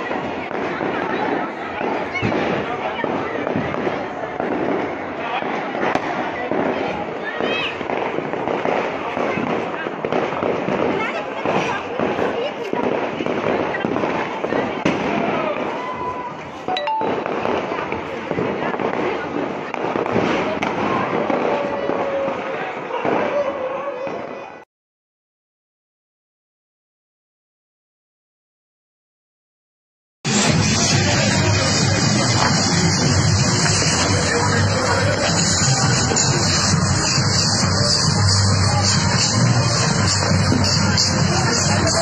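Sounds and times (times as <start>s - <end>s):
firecrackers crackling and popping: 0.0s - 24.6s, 30.3s - 42.0s
people's voices: 0.0s - 24.6s, 30.3s - 42.0s.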